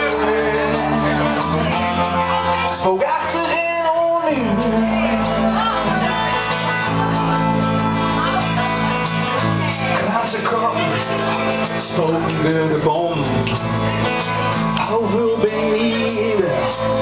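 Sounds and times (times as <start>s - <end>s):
electric and acoustic guitar: 0.0s - 17.0s.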